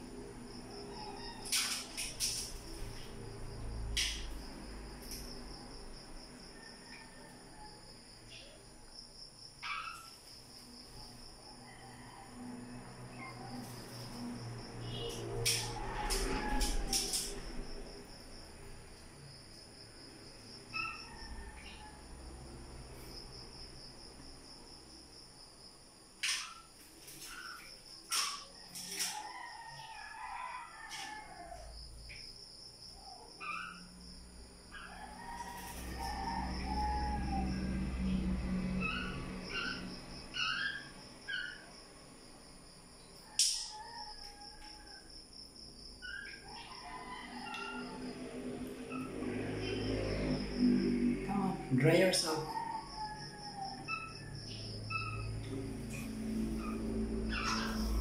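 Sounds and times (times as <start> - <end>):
bird chirping: 56.6 - 58.0.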